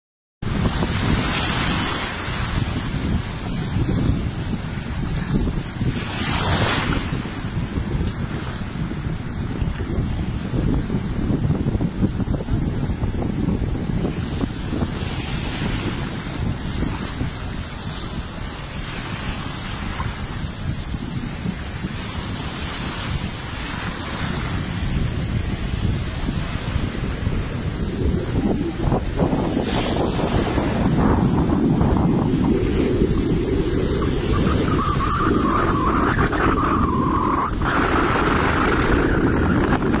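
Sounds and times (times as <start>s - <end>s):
small waves washing on shore: 0.4s - 40.0s
wind buffeting microphone: 0.4s - 40.0s.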